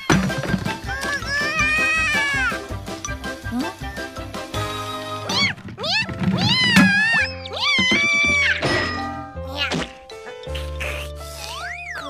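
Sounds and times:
cartoon background music: 0:00.0 - 0:12.0
kitten character squeaky cries: 0:01.0 - 0:02.6, 0:05.3 - 0:08.6.

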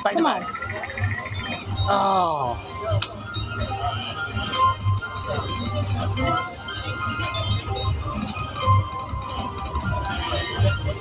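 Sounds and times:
slot reels spinning: 0:00.0 - 0:01.7
slot machine game music: 0:00.0 - 0:11.0.

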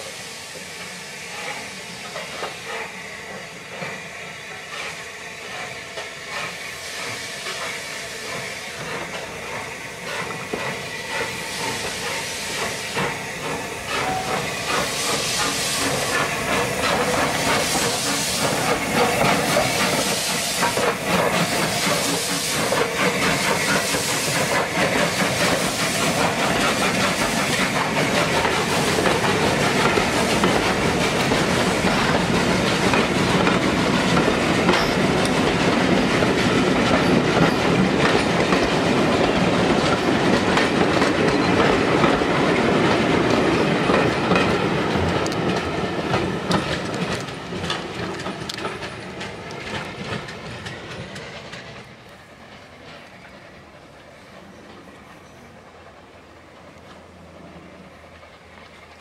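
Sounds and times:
locomotive steam beats: 0:00.0 - 0:59.0
steam train passing: 0:00.0 - 0:59.0
wheels clicking over rail joints: 0:12.7 - 0:53.4.

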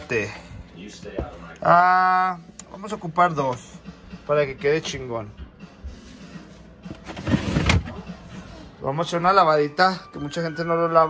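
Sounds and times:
plastic drawer sliding shut: 0:07.0 - 0:08.0.

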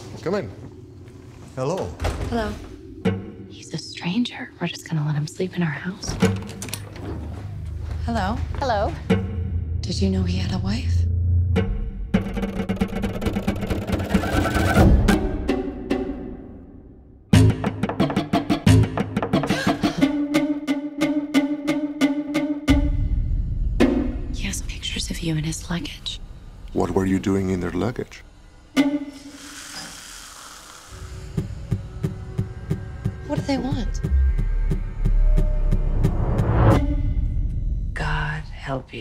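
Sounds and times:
low rumble with deep pulse: 0:07.2 - 0:14.1, 0:22.7 - 0:27.2, 0:31.6 - 0:39.0.

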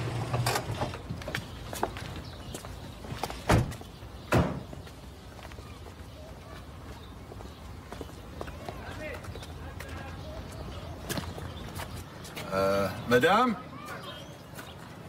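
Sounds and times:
outdoor background noise: 0:00.0 - 0:15.0
car door slamming shut: 0:03.5 - 0:04.7.

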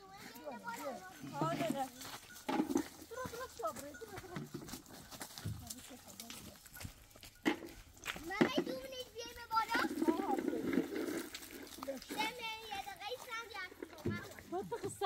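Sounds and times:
women and children talking: 0:00.0 - 0:15.0.

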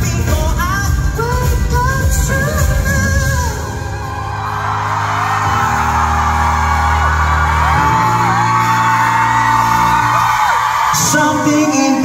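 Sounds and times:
live pop-rock band playing: 0:00.0 - 0:12.0
audience cheering and screaming: 0:02.5 - 0:12.0.

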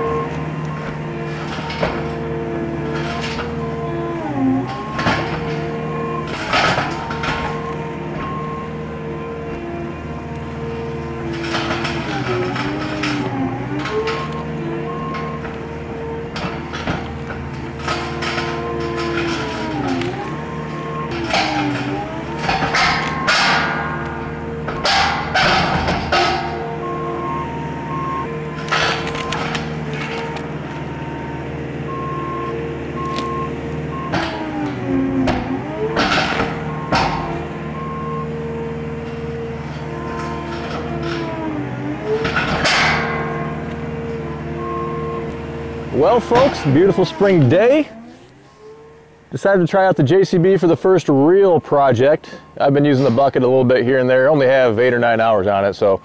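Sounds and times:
diesel engine lugging under load: 0:00.0 - 0:56.0.

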